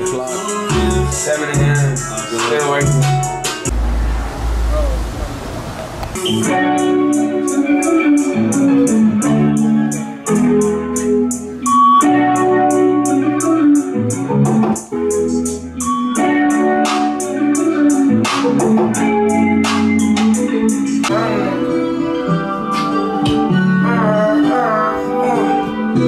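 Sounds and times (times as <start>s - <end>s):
melody of pitched notes: 0.0s - 26.0s
deep bass notes: 2.8s - 6.7s.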